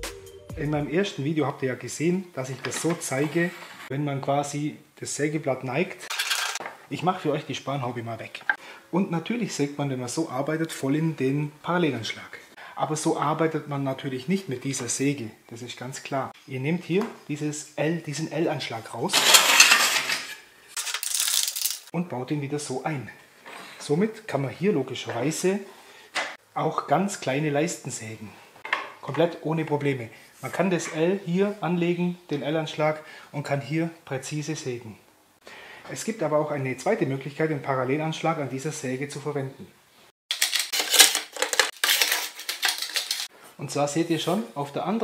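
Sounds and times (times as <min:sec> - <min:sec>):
metal scraping on metal: 0:02.7 - 0:03.9, 0:19.1 - 0:20.5.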